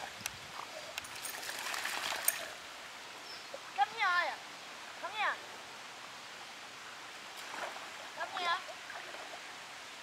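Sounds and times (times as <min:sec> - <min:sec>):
dogs splashing through water: 0:01.1 - 0:02.6.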